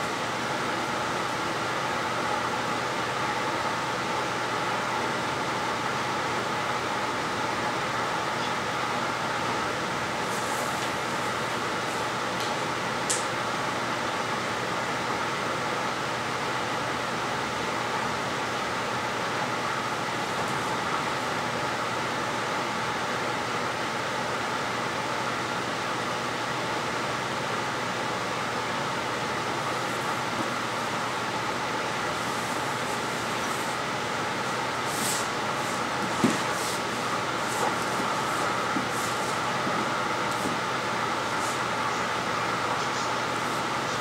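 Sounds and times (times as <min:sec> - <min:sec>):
steady rushing room noise: 0:28.0 - 0:44.0.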